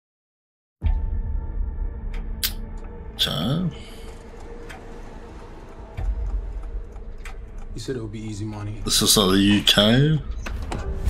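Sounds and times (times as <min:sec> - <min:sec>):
quiet sparse music: 0:00.9 - 0:11.0.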